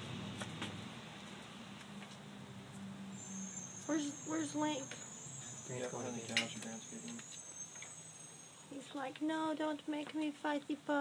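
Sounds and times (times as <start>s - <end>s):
high-pitched insect trill: 3.1s - 8.8s.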